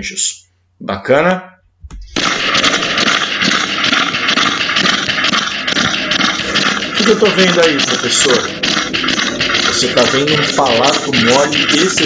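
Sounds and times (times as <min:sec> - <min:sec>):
dog rasping breath: 0:02.2 - 0:12.0.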